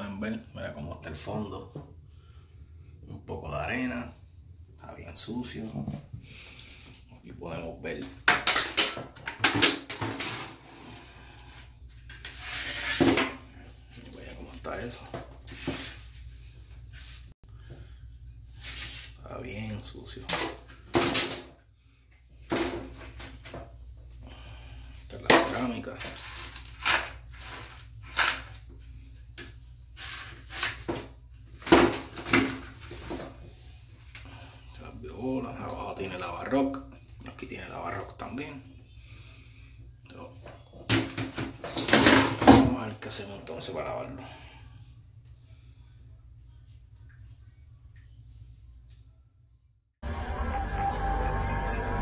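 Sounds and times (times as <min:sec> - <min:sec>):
low steady hum: 0:00.0 - 0:52.0
handling and rustling noises: 0:25.3 - 0:28.8.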